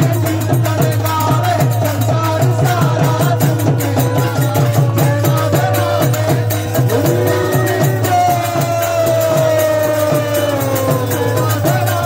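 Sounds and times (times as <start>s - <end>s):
drum strokes: 0.0s - 12.0s
small hand cymbals: 0.0s - 12.0s
harmonium drone: 3.2s - 12.0s.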